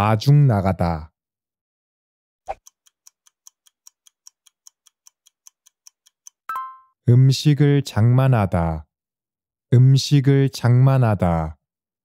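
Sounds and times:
clock ticking: 2.5 - 6.8.

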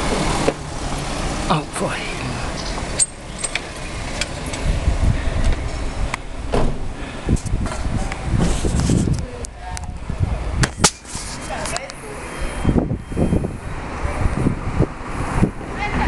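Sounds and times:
handheld camera handling rumble: 7.3 - 10.0, 10.6 - 12.0.

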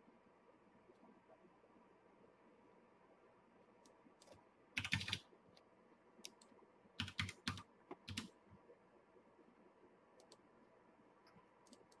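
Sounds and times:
keyboard keys tapping: 4.2 - 5.2, 6.2 - 8.3.

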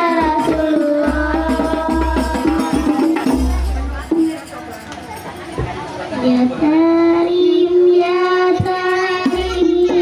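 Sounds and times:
child singing: 0.0 - 3.6, 6.2 - 10.0.

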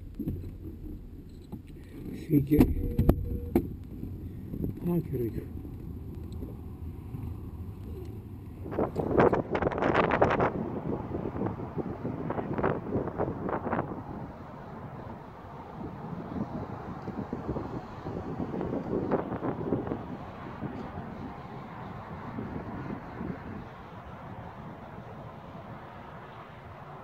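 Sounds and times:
steady rumble: 0.0 - 27.0
wind buffeting microphone: 0.0 - 27.0.

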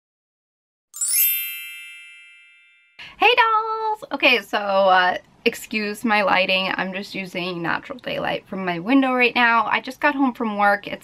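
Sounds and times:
bright chime ding: 1.0 - 3.0
woman speaking: 3.0 - 11.0.

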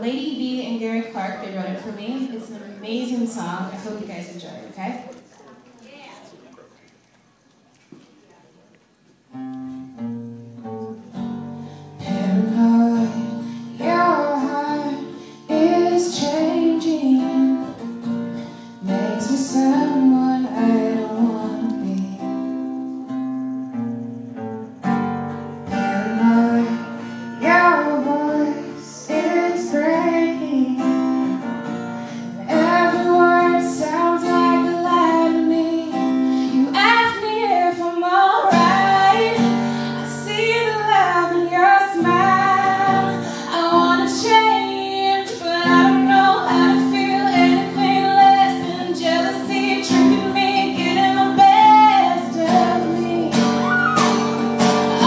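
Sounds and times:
guitar accompaniment: 8.8 - 55.0
woman singing: 12.0 - 17.8, 18.8 - 22.4, 25.7 - 31.3, 32.2 - 54.0.

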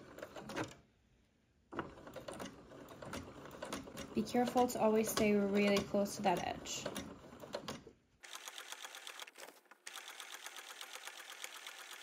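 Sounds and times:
sewing machine stitching: 0.0 - 0.8, 1.7 - 12.0.

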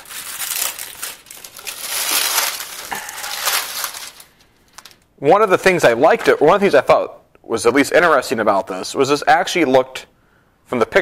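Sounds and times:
plastic wrap crinkling: 0.0 - 5.1.

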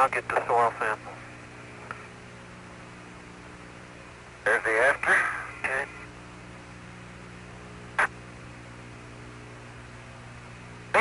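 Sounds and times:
radio static hiss: 0.0 - 9.3, 10.8 - 11.0
low mains hum: 0.0 - 11.0
short radio crackle: 8.0 - 8.2.

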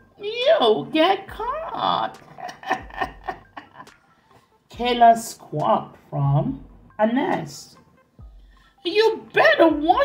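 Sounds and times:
person laughing: 2.2 - 4.2.

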